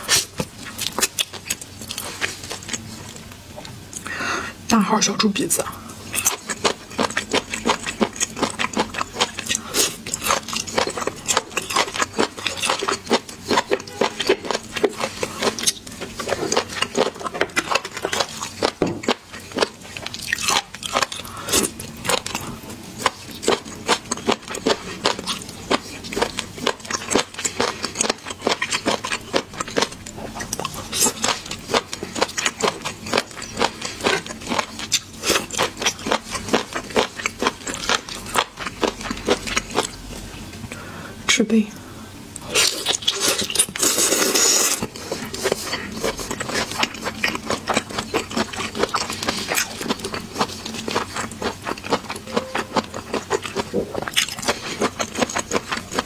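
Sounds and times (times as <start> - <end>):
chewing and biting seafood: 0.0 - 4.1, 6.1 - 40.0, 42.4 - 56.0.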